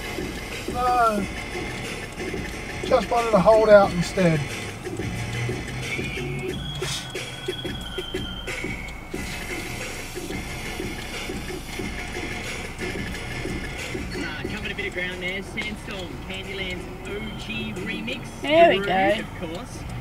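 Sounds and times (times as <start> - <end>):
music on car radio: 0.0 - 20.0.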